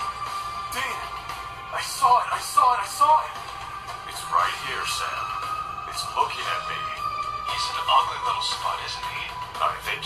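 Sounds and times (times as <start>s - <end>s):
background music with held note: 0.0s - 10.0s.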